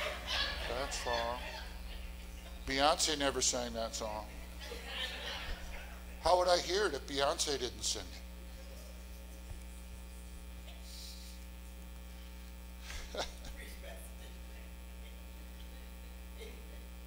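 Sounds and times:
faint electrical mains hum: 0.0s - 17.0s.

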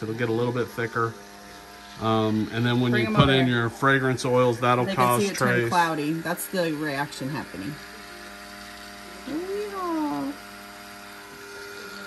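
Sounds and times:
stick blender running: 0.0s - 12.0s.

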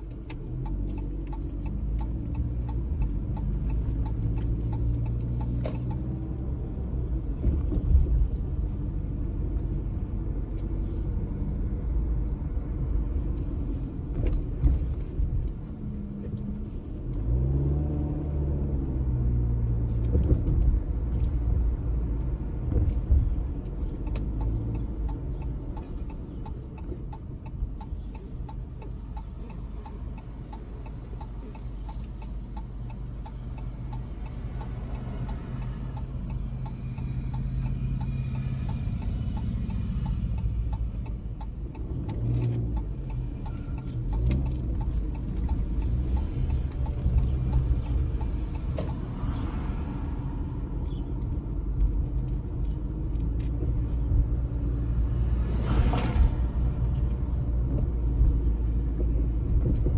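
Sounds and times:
regular ticking: 0.0s - 7.3s, 22.2s - 55.2s
car engine and road noise: 0.0s - 59.9s.

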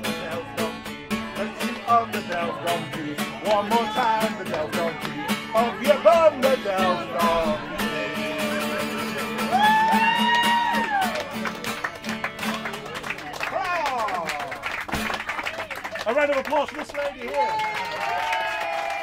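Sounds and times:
person singing: 0.0s - 10.8s
acoustic guitar: 0.0s - 16.2s.

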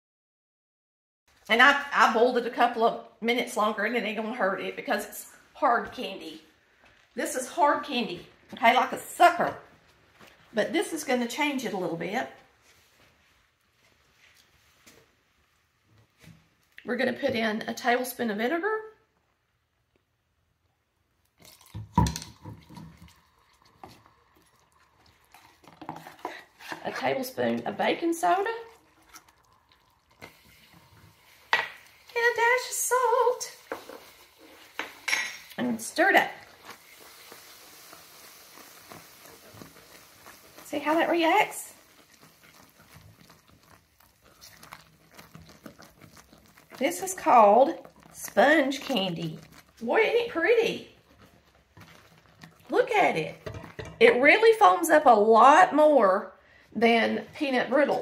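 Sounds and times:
syrup bubbling: 21.2s - 55.8s
spatula scraping in pot: 22.4s - 54.8s.

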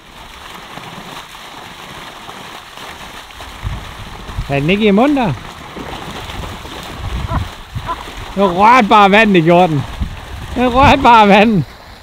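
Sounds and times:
fish splashing at water surface: 0.0s - 11.0s
water pouring from pipe: 0.0s - 12.0s.

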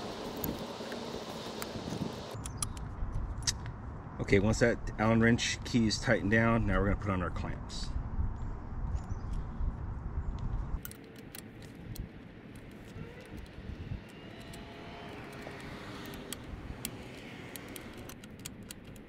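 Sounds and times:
distant traffic hum: 0.0s - 9.3s, 10.4s - 19.0s
metallic clicks and rattles: 15.3s - 19.0s.

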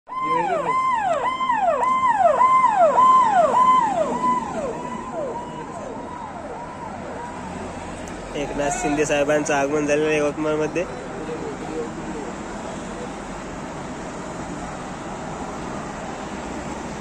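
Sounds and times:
police siren wailing: 0.1s - 7.8s.

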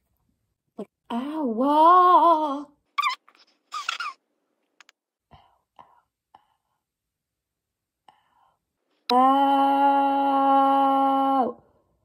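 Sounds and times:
breaths: 5.3s - 6.9s, 8.0s - 9.1s.

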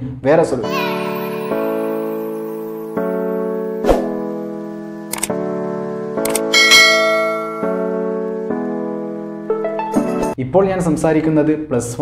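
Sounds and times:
background music with held chords: 0.6s - 10.4s
bright bell chime: 0.7s - 3.7s, 6.5s - 8.0s
short clicks: 5.1s - 5.4s, 6.2s - 6.5s.

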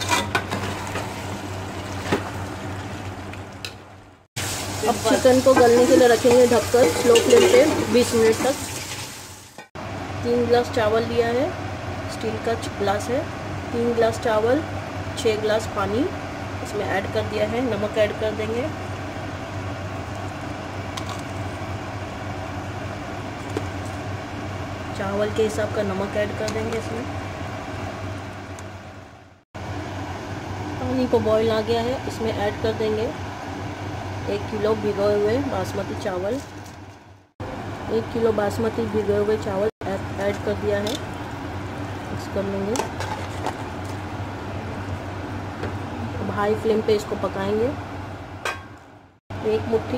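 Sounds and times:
pot of water boiling: 0.0s - 9.9s
gas stove hum and rush: 0.0s - 49.9s.

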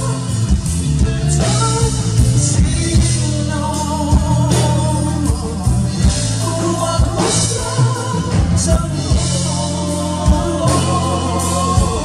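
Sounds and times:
drum beats: 0.0s - 12.0s
electric bass: 0.0s - 12.0s
keyboard: 0.0s - 12.0s
men singing into microphones: 1.0s - 12.0s.

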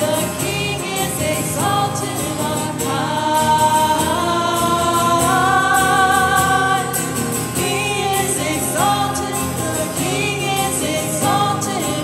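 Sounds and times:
church choir singing a hymn: 0.0s - 12.0s.

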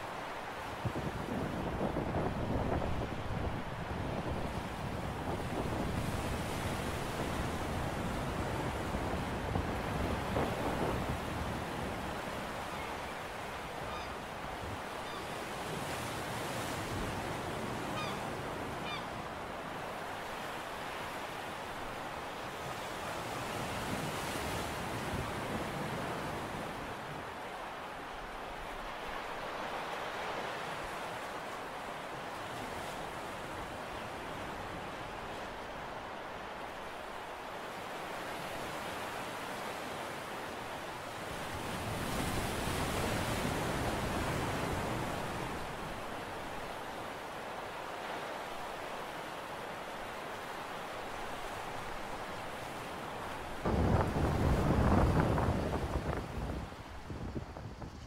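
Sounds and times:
wind on microphone: 0.8s - 13.1s, 53.6s - 58.0s
surf washing against rocks: 19.6s - 58.0s.

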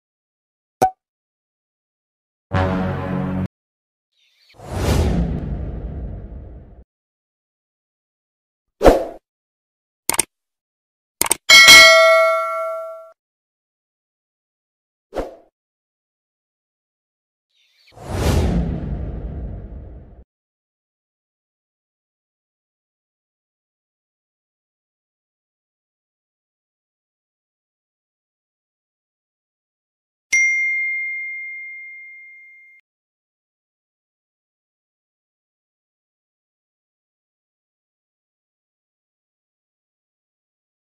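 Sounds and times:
whoosh with deep rumble: 4.7s - 6.8s, 18.0s - 20.2s
bell-like ding: 11.5s - 13.2s, 30.3s - 32.8s.

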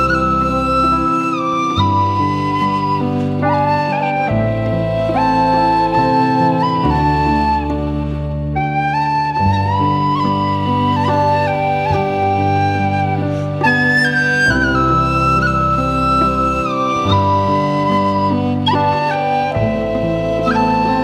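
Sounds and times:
whistle playing slow melody: 0.0s - 21.0s.

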